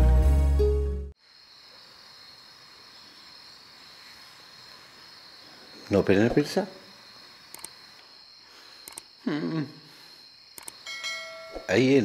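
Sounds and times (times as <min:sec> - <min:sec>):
crickets chirring: 0:01.2 - 0:12.0
man speaking: 0:05.9 - 0:06.8, 0:11.6 - 0:12.0.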